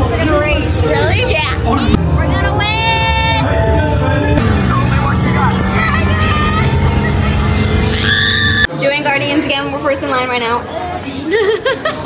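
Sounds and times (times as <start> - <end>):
ride vehicle rumble: 0.0 - 8.7
music: 0.0 - 10.6
voices: 0.0 - 12.0.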